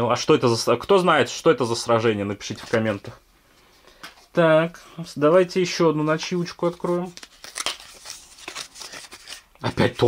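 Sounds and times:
paper packet tearing and crinkling: 0:06.8 - 0:10.0.

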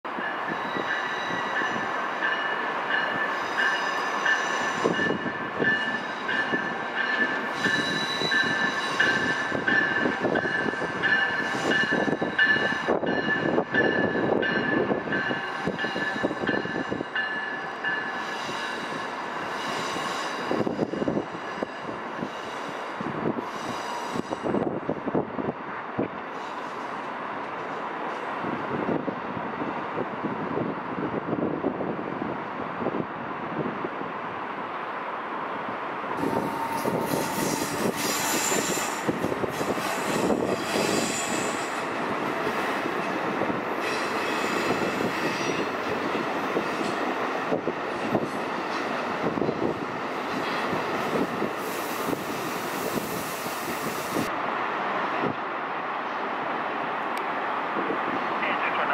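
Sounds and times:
train cars rumbling and clattering: 0:00.0 - 0:34.4, 0:35.6 - 0:58.9
train wheels squealing: 0:00.2 - 0:24.7, 0:26.3 - 0:27.1, 0:36.2 - 0:42.1, 0:43.8 - 0:46.0.

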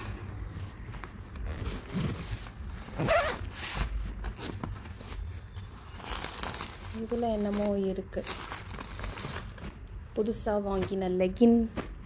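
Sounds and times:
suitcase zipper opening: 0:02.9 - 0:03.5.

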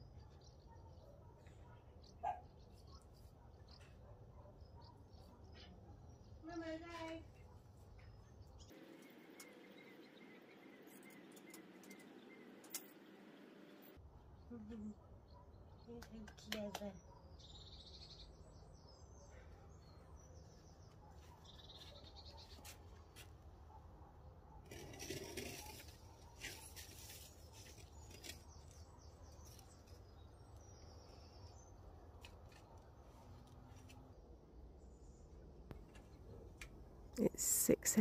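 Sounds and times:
birds chirping and trilling: 0:00.0 - 0:07.0, 0:17.0 - 0:22.8.

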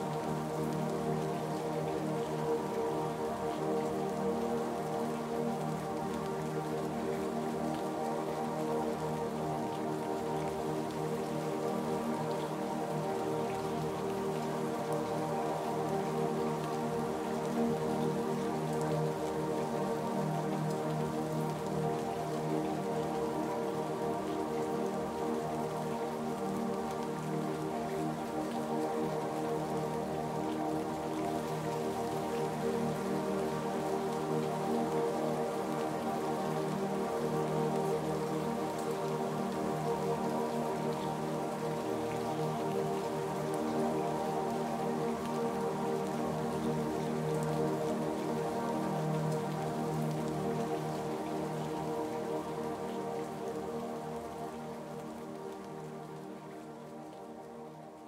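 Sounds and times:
slow ambient music: 0:00.0 - 0:58.0
steady rainfall: 0:00.0 - 0:58.0.

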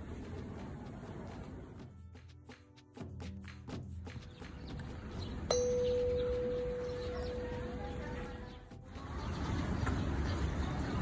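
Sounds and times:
metal tube chime ringing: 0:05.5 - 0:07.7.

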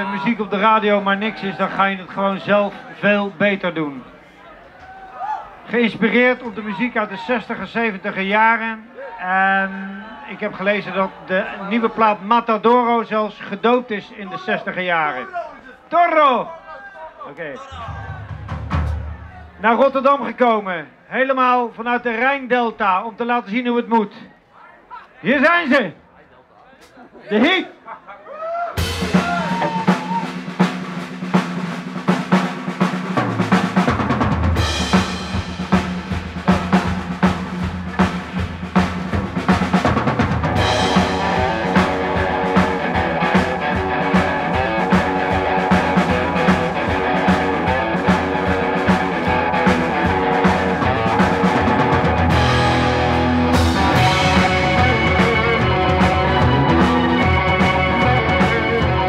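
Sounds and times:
rock band playing: 0:00.0 - 0:03.1, 0:17.7 - 0:19.6, 0:28.8 - 0:59.0
drum kit: 0:17.7 - 0:19.6, 0:28.7 - 0:59.0
bass guitar: 0:17.8 - 0:19.6, 0:28.8 - 0:30.7, 0:33.5 - 0:59.0
electric guitar: 0:39.7 - 0:59.0.

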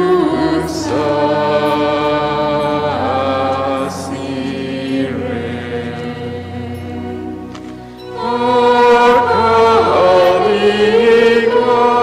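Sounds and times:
church choir singing a chant: 0:00.0 - 0:12.0.

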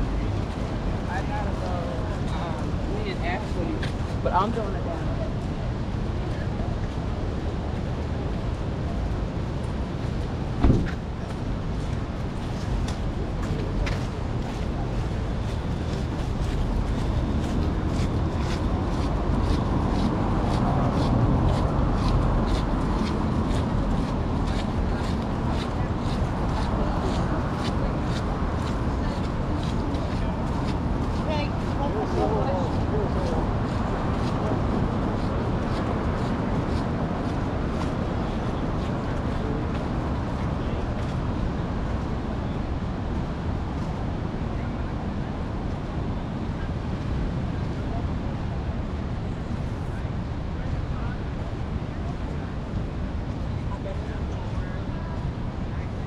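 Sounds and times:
chatter of passers-by: 0:00.0 - 0:56.0.

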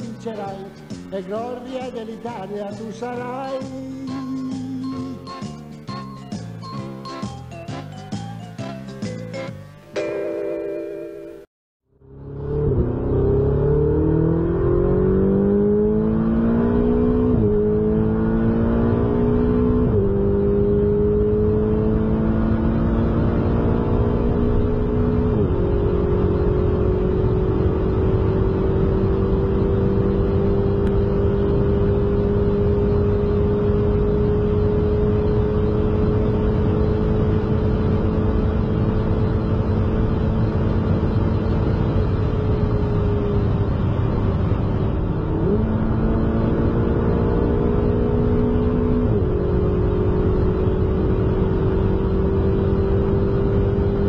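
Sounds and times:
car engine accelerating: 0:11.9 - 0:54.0.

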